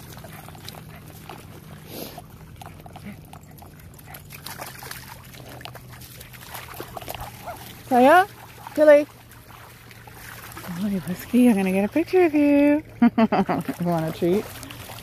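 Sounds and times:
dog running through shallow water: 0.0s - 12.8s, 13.4s - 15.0s.

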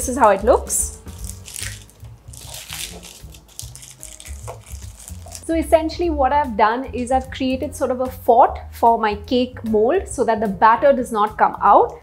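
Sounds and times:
background music: 0.0s - 12.0s
aluminium foil crinkling: 0.9s - 5.5s.

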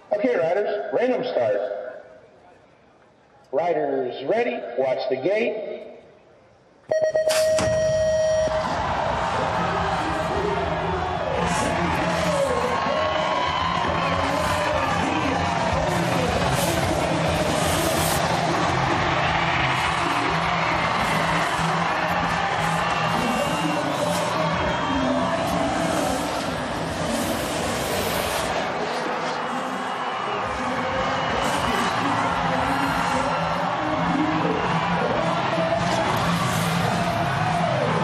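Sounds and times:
electronic start tone: 6.9s - 8.6s
crowd cheering: 7.3s - 38.0s.

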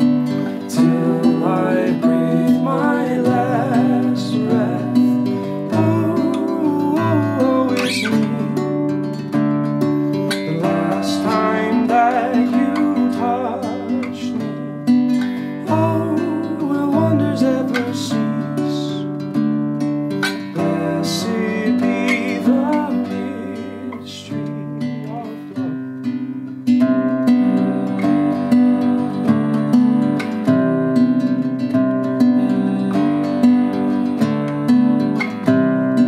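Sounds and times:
classical guitar playing chords: 0.0s - 36.0s
fingers squeaking on strings: 7.6s - 8.3s.

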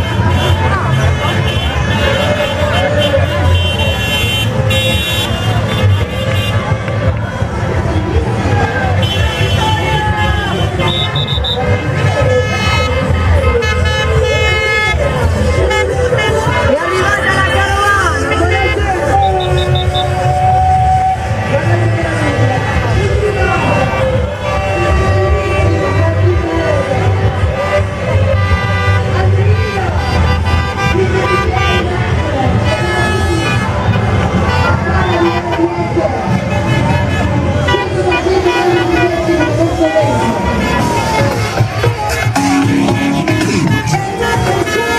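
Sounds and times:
vehicles passing: 0.0s - 44.9s
amplified voice: 13.4s - 28.2s, 34.8s - 44.9s.

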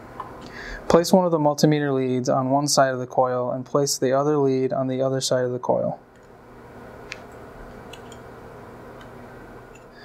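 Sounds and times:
steady room hum: 0.0s - 10.0s.

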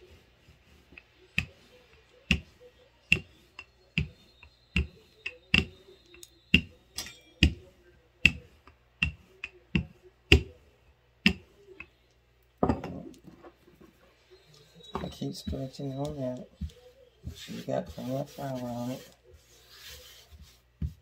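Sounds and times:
hand brushing flour: 0.0s - 6.7s, 14.3s - 21.0s
rolling pin knocking on dough: 2.3s - 2.5s, 3.1s - 5.8s, 6.5s - 6.8s, 7.4s - 7.6s, 8.2s - 10.5s, 11.2s - 11.5s.

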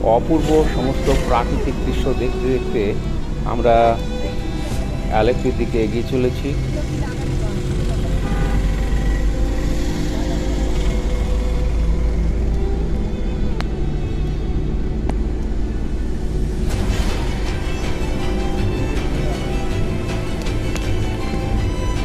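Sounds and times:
car engine and tyres rumbling: 0.0s - 22.0s.

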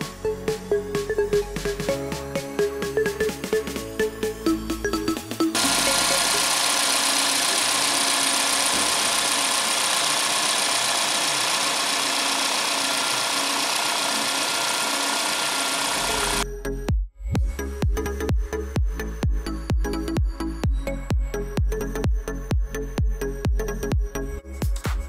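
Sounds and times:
car engine idling: 5.6s - 16.4s.

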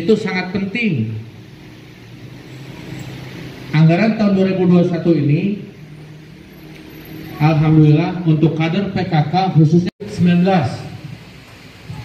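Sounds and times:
man's amplified voice: 0.0s - 1.3s, 3.7s - 5.8s, 7.3s - 11.2s
vehicle passing rumble: 1.2s - 9.6s.

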